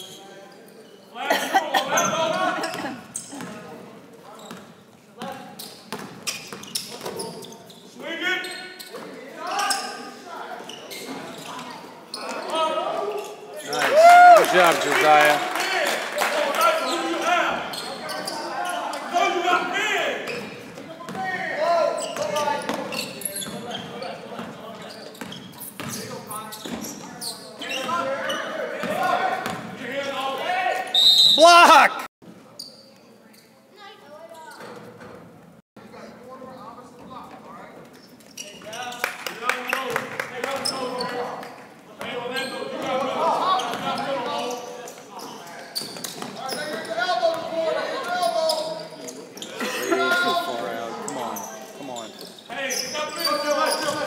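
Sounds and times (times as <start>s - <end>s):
voices echoing in gym: 0.0s - 35.0s, 35.8s - 54.0s
referee's whistle: 30.9s - 31.9s.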